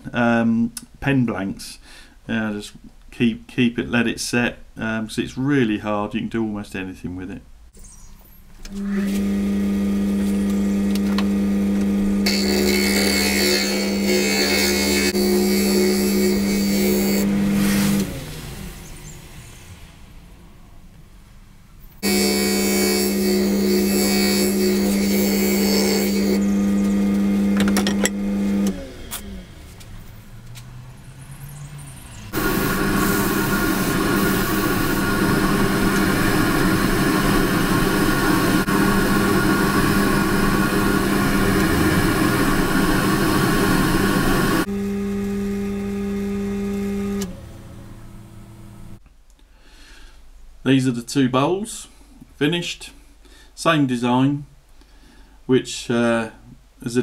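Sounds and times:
lathe motor humming: 8.7 - 18.8, 22.0 - 29.8, 32.3 - 49.0
tool cutting on spinning lathe: 8.7 - 19.2, 22.0 - 29.5, 32.3 - 49.0.

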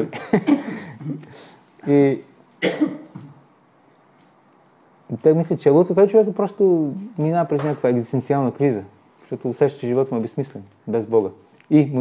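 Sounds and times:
man clearing throat: 0.0 - 1.3, 2.6 - 3.4.

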